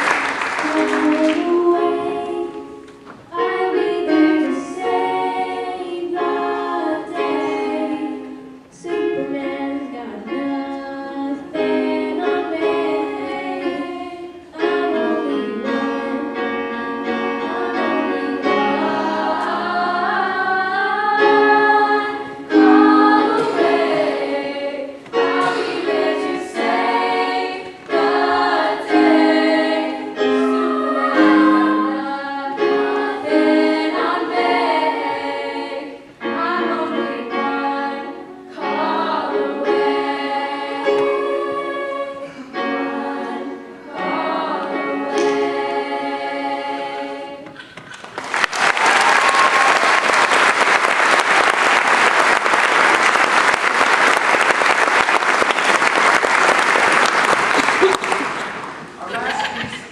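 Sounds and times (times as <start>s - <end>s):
girls' choir singing: 0.0s - 48.4s.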